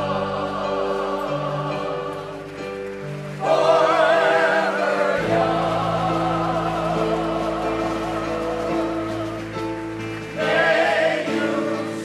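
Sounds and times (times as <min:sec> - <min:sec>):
chorus of elderly singers: 0:00.0 - 0:02.8, 0:03.4 - 0:12.0.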